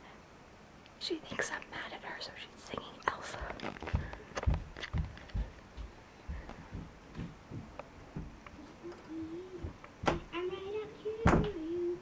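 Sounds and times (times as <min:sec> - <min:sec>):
woman whispering: 0:01.0 - 0:03.8
low thuds: 0:03.4 - 0:08.4.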